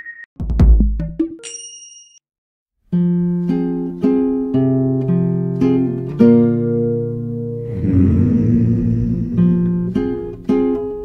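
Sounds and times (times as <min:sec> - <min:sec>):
bright bell-like ding: 0:01.4 - 0:02.2
plucked acoustic guitar music: 0:02.9 - 0:07.7, 0:09.3 - 0:11.0.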